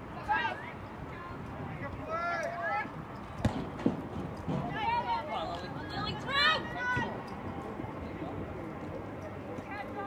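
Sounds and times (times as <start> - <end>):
soccer ball thuds: 3.4 - 4.6.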